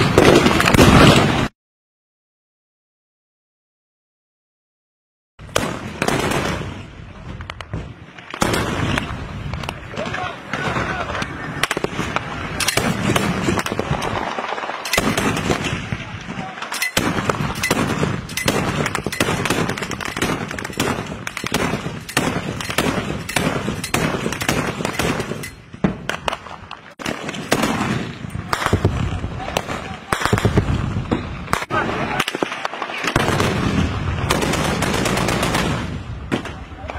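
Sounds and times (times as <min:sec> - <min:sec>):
gunshots: 0:00.0 - 0:01.5, 0:05.4 - 0:36.9
people's voices: 0:09.6 - 0:12.7, 0:15.7 - 0:17.6, 0:28.4 - 0:30.6, 0:31.5 - 0:33.2, 0:36.4 - 0:36.9.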